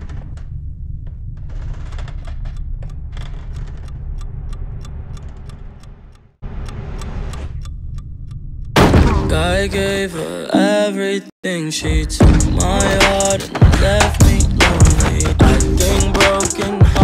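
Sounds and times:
pocket watch ticking: 0:02.1 - 0:08.8.

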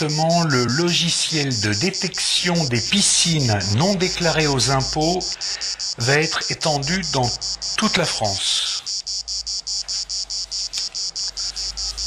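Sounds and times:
insect chirping: 0:00.0 - 0:12.0.

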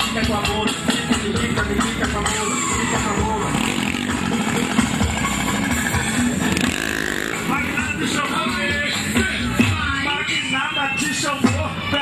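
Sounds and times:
loud music from sound system: 0:00.0 - 0:12.0
people's voices: 0:00.0 - 0:12.0
motorcycle engines revving: 0:00.4 - 0:11.2.

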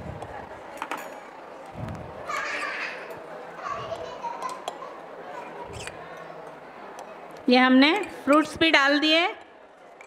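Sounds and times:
background chatter of voices: 0:00.0 - 0:10.0
children's voices: 0:02.2 - 0:05.8.

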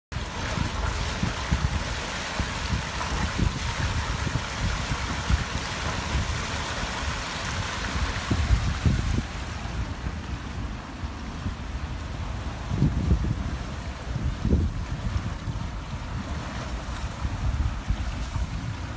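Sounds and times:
fire burning with rushing sound: 0:00.1 - 0:18.9
wind on microphone: 0:00.2 - 0:18.9.

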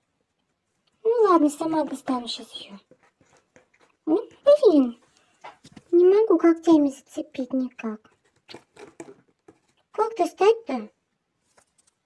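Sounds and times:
cat scratching cardboard box: 0:02.8 - 0:04.5, 0:08.1 - 0:09.8.

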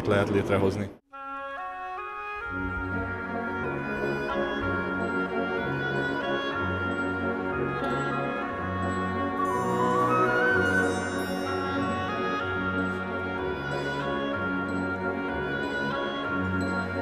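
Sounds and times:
wind band playing sustained chords: 0:01.2 - 0:17.0.

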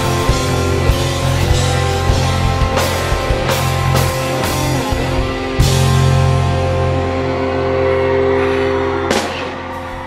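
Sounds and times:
rock band held chord: 0:00.0 - 0:10.0.

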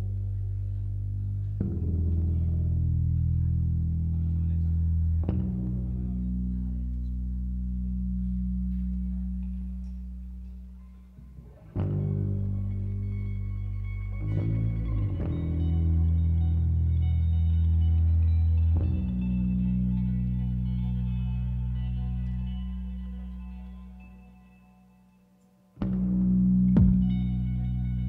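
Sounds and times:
plucked electric bass notes: 0:00.0 - 0:25.0, 0:25.7 - 0:28.0
sustained guitar tones: 0:00.0 - 0:28.0.

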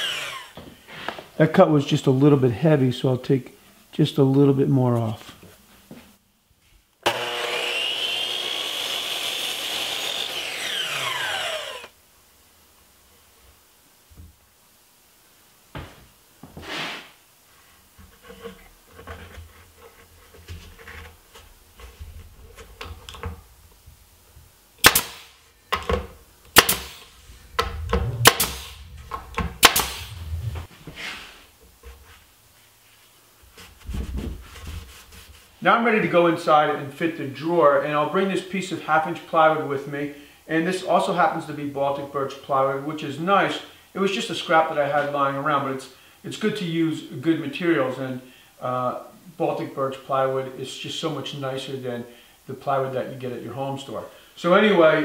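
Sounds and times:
miter saw motor whine: 0:00.0 - 0:00.6, 0:07.0 - 0:11.9.

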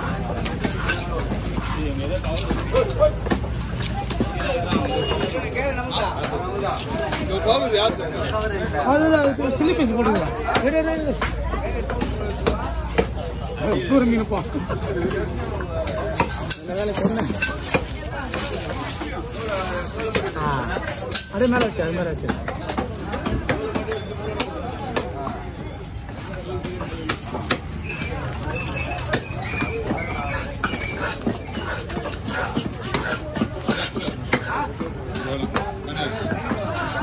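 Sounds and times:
knife chopping fish on wood: 0:29.0 - 0:35.7.

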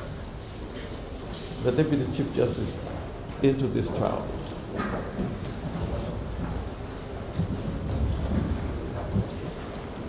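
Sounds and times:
crowd rumble in a room: 0:00.0 - 0:10.0.

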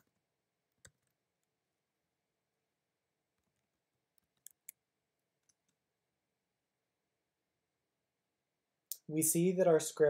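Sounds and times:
computer keyboard keystrokes: 0:04.2 - 0:04.8.

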